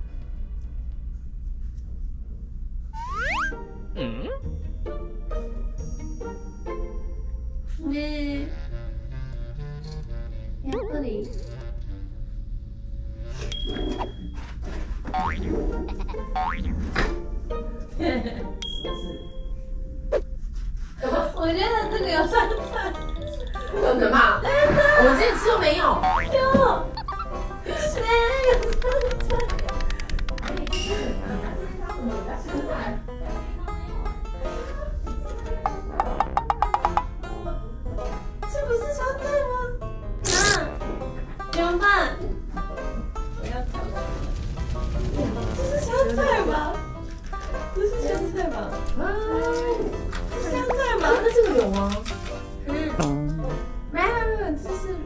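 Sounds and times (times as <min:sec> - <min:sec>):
light background music: 0:00.0 - 0:55.0
cartoon boing effects: 0:03.0 - 0:04.4, 0:15.2 - 0:17.1, 0:26.0 - 0:27.4, 0:35.7 - 0:37.1
woman speaking: 0:21.0 - 0:22.5, 0:50.5 - 0:52.1.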